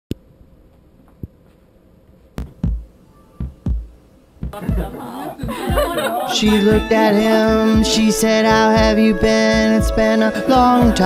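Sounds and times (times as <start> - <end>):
low heartbeat-like double thumps: 2.4 - 10.0.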